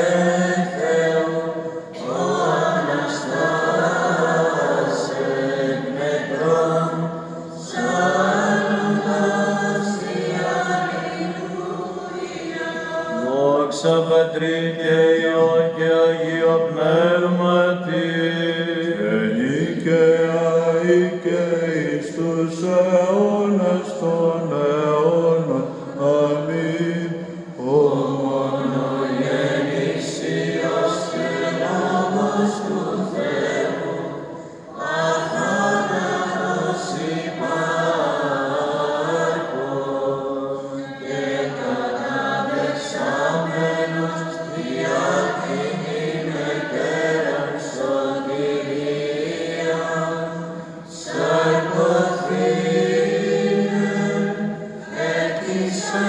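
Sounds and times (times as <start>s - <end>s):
held low vocal drone: 0.0s - 48.9s
men chanting a melodic line: 12.9s - 56.0s.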